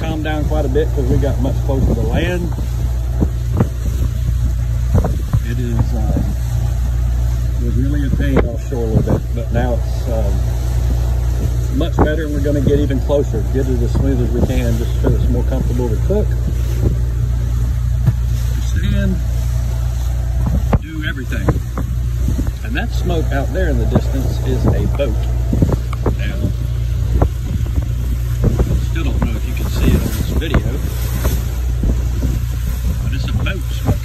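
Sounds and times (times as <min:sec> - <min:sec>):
boat engines droning: 0:00.0 - 0:34.0
wind buffeting microphone: 0:00.0 - 0:34.0.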